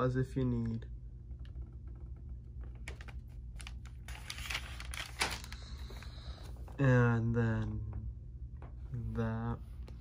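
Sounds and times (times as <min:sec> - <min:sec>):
steady low hum: 0:00.0 - 0:10.0
paper pages clicking and rustling: 0:02.7 - 0:06.6.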